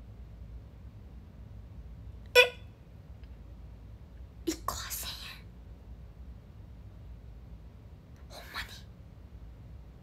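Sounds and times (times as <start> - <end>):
faint low hum: 0.0 - 10.0
woman whispering syllables: 8.2 - 8.9.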